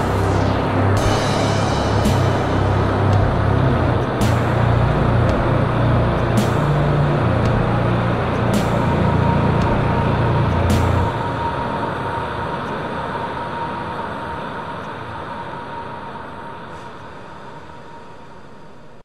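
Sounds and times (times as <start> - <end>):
distorted guitar chords: 0.0 - 11.6
cymbal crash: 0.0 - 11.7.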